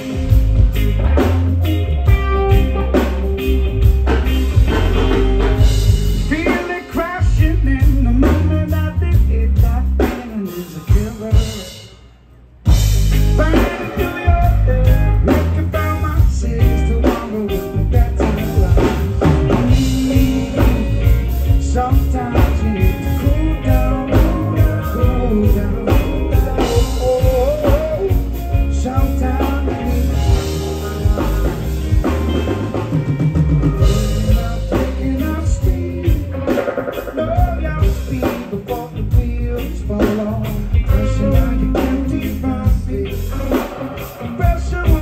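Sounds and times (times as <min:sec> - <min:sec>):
live reggae band playing: 0:00.0 - 0:45.0
lead vocal singing: 0:05.6 - 0:11.9, 0:13.2 - 0:32.6, 0:33.6 - 0:45.0.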